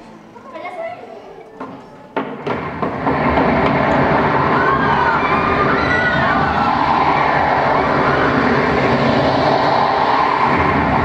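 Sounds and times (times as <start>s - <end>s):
loud rumbling sound effect: 2.4s - 11.0s
children shouting: 3.7s - 11.0s.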